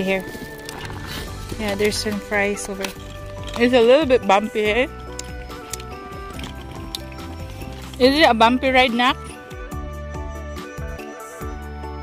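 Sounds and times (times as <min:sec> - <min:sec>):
music of slow held notes: 0:00.0 - 0:12.0.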